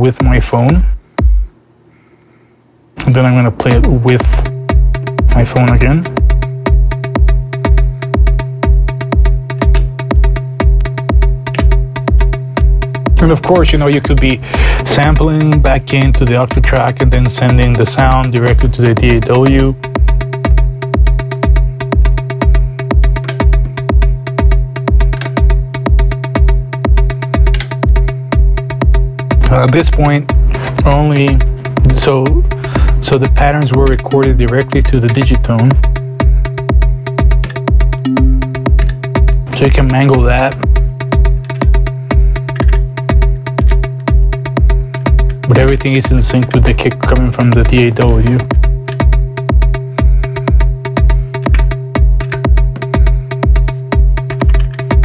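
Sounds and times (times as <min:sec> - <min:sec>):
electronic beat: 0:00.0 - 0:01.6, 0:03.7 - 0:16.7, 0:38.1 - 0:38.9
faint hum: 0:00.0 - 0:07.0
kick drum: 0:00.2 - 0:01.6, 0:03.6 - 0:16.2, 0:19.0 - 0:29.5, 0:36.7 - 0:39.3, 0:50.5 - 0:54.2
sustained bass tone: 0:38.1 - 0:39.0
rapid ticking synth arpeggio: 0:38.1 - 0:39.2.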